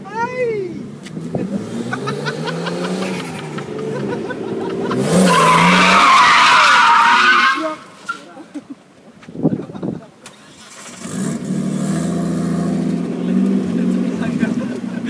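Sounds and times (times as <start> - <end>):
car engine revving: 0.8 - 8.0, 10.5 - 15.0
tyre squeal: 5.1 - 8.3.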